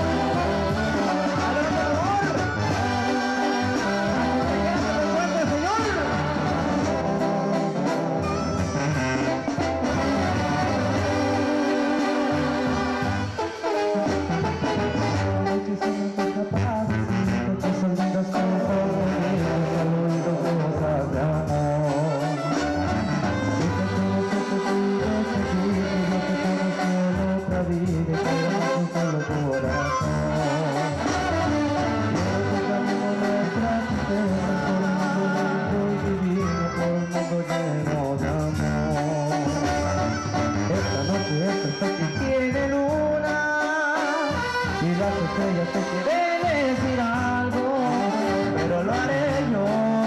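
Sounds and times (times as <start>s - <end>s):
brass band playing: 0.0s - 50.0s.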